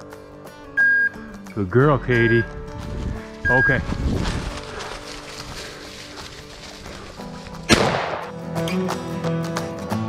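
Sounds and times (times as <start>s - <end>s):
background music: 0.0s - 10.0s
shotgun shot: 7.7s - 8.4s.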